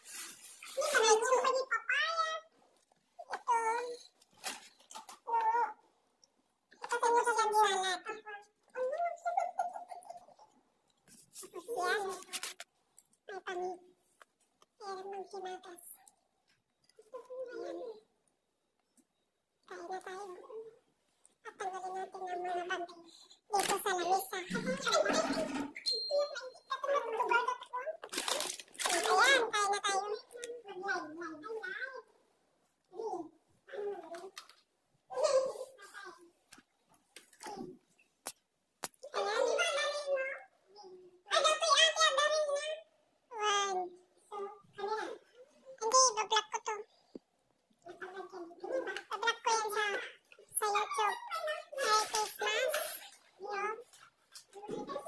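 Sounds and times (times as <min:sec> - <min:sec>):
brief rustle: 0:11.1 - 0:12.7.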